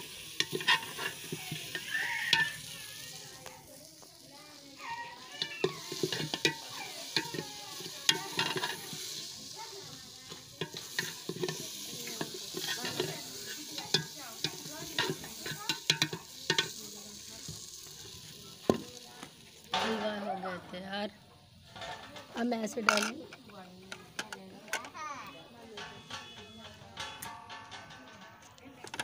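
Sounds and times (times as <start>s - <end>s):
metal spoon scraping a pot: 0.0s - 3.1s, 4.9s - 9.6s, 10.3s - 16.8s, 25.8s - 29.0s
food sizzling: 0.0s - 29.0s.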